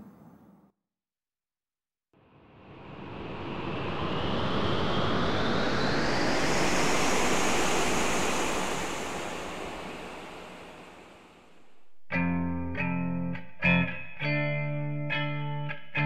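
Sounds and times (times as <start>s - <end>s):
rushing noise like wind: 2.2s - 12.7s
hiss rising in pitch: 2.3s - 12.6s.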